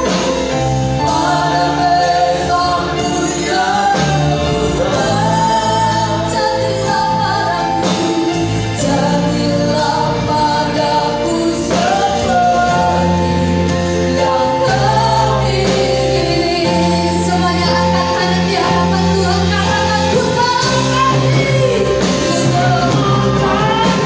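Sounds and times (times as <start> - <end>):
worship band playing gospel song: 0.0 - 24.0.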